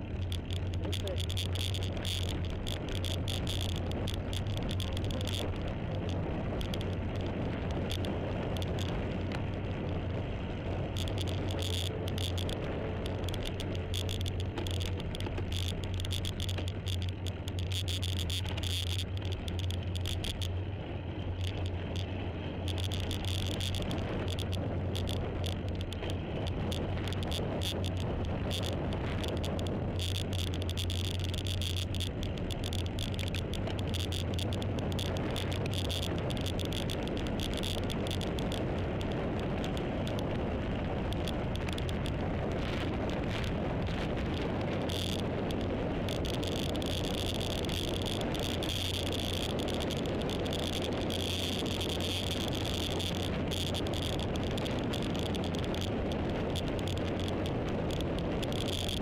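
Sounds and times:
vehicle engine drone: 0:00.0 - 0:59.0
wind rushing over microphone: 0:00.0 - 0:59.0.

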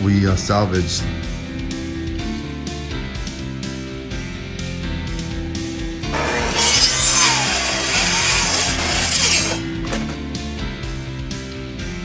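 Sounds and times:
guitar music: 0:05.9 - 0:10.8
miter saw cutting wood: 0:06.0 - 0:10.2.

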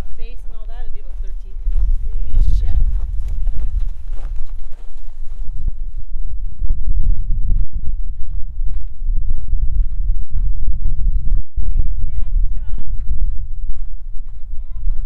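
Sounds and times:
footsteps crunching on snow: 0:00.0 - 0:15.0
loud steady low rumble: 0:00.0 - 0:15.0.

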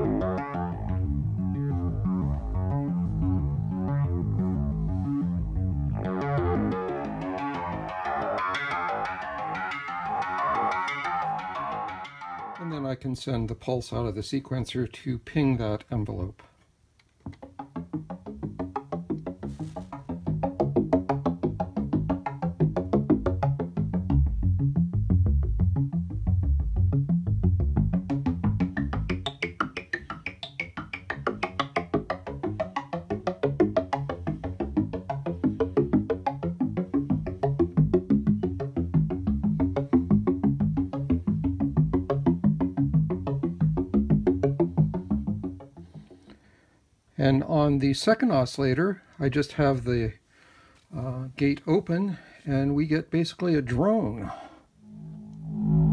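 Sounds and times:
synthesizer plucked notes sequence: 0:00.0 - 0:13.1, 0:17.2 - 0:46.4, 0:54.8 - 0:55.9.

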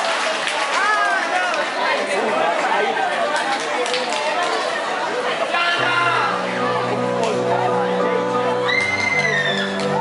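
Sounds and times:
audience chattering: 0:00.0 - 0:10.0.

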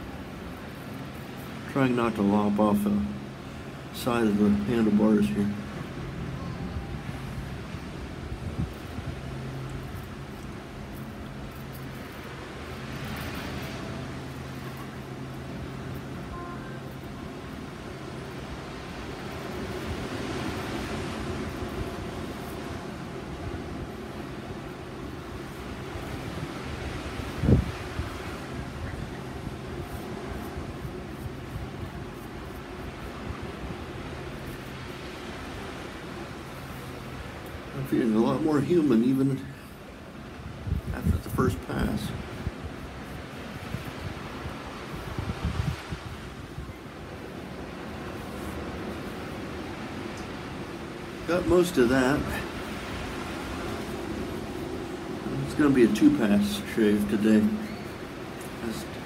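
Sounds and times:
road traffic passing: 0:00.0 - 0:38.2, 0:42.2 - 0:59.0
steady low hum: 0:00.0 - 0:59.0.

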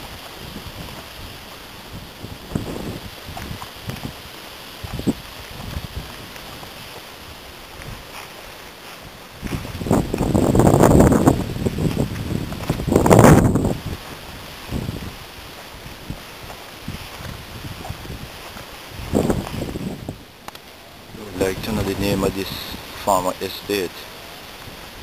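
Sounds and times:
wind gusts buffeting microphone: 0:00.0 - 0:25.0.

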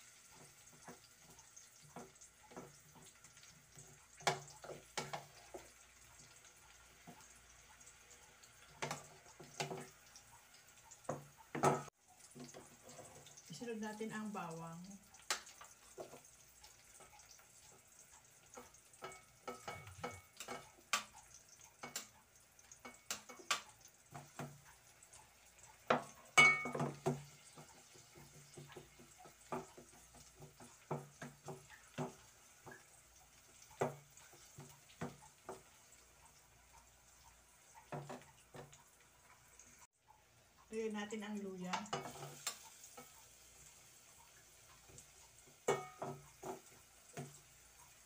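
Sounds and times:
faint sizzle: 0:00.0 - 0:48.0.

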